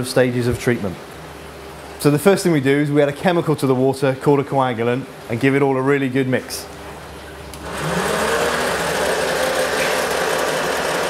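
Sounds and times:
stirrer motor whining: 7.5s - 11.0s.

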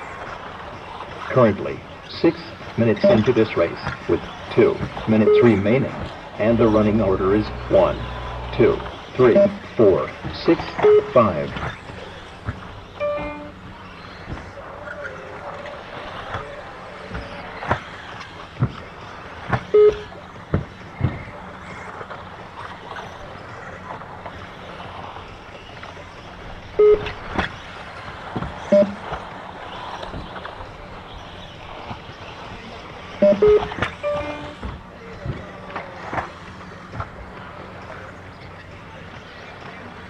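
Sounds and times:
radio-control buggy motors: 0.1s - 27.7s
short electronic beeps: 3.0s - 3.4s, 5.2s - 5.7s, 7.5s - 9.7s, 10.7s - 11.3s, 13.0s - 13.6s, 19.8s - 20.1s, 26.8s - 27.2s, 28.7s - 29.0s, 33.2s - 34.6s.

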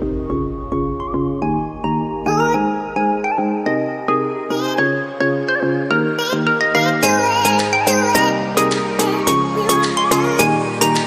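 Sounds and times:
light bright background music: 0.0s - 11.0s.

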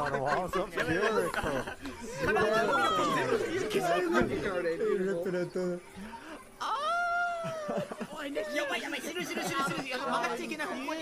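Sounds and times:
voices talking over one another: 0.0s - 7.1s.

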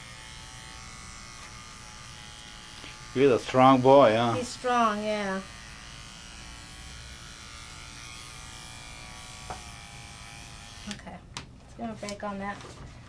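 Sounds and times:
electric clippers humming: 0.0s - 11.0s.

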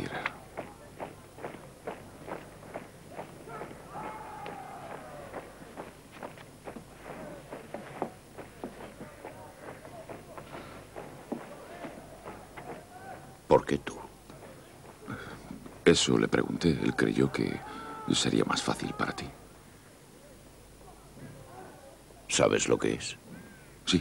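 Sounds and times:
faint distant shouting: 0.0s - 6.3s, 6.9s - 15.4s, 16.2s - 22.3s
people running footfalls: 0.0s - 19.2s.

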